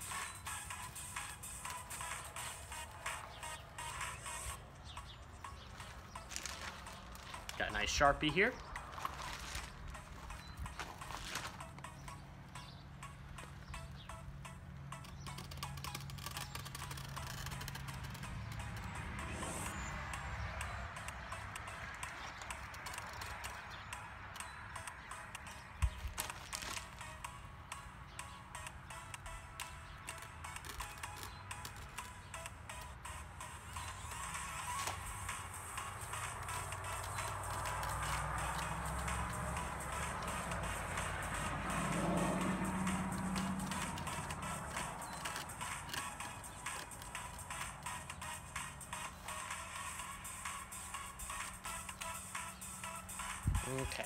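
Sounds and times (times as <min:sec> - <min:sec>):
quiet background music: 0:00.0 - 0:54.0.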